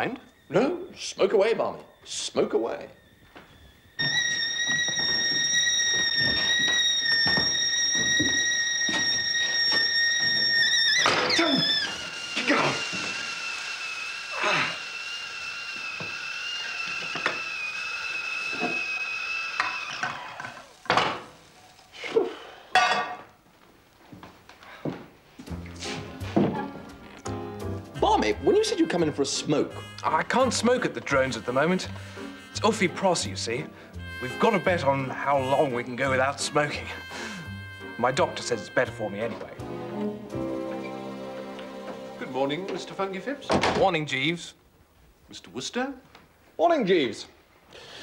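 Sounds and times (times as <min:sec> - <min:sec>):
kettle whistling: 0:00.0 - 0:22.0, 0:28.1 - 0:39.6.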